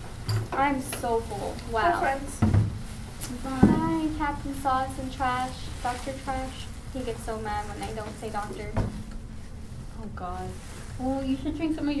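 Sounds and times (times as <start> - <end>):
woman talking: 0.5 - 2.5, 3.2 - 9.0, 10.0 - 12.0
dull knocks: 2.4 - 2.8.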